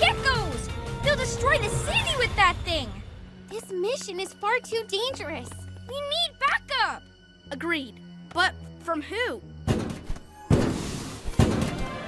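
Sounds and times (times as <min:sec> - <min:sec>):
heavy cartoon thud: 0:09.7 - 0:12.0.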